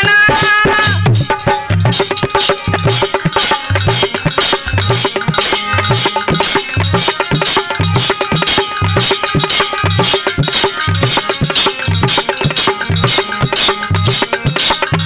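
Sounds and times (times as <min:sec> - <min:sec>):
harmonium: 0:00.0 - 0:15.0
hand cymbals clinking: 0:01.1 - 0:15.0.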